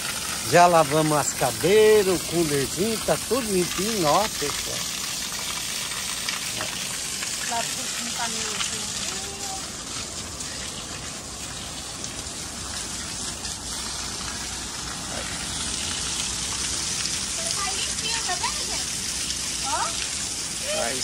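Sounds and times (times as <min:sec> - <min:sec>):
running water gushing: 0:00.0 - 0:21.0.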